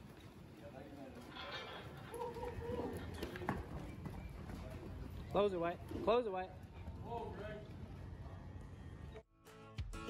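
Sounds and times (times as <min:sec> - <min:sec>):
cattle hooves running on dirt: 0:00.0 - 0:08.1.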